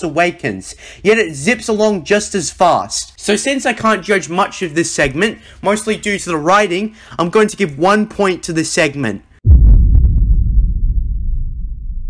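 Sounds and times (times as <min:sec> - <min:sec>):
deep boom with low rumble: 0:09.4 - 0:12.0.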